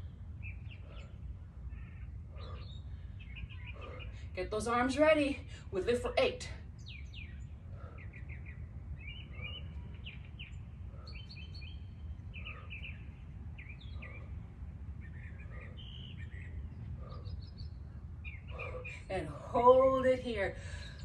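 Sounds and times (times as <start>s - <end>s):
birds chirping: 0.0s - 21.0s
low background rumble: 0.0s - 21.0s.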